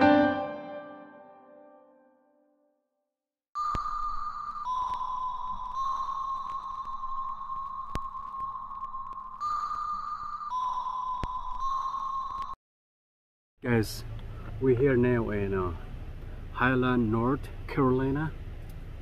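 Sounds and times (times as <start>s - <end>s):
sustained high tone: 3.6s - 12.6s.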